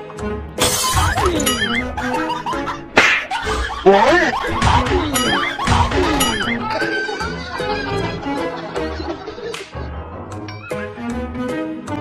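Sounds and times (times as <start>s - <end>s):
background music with warbling melody: 0.0s - 12.0s.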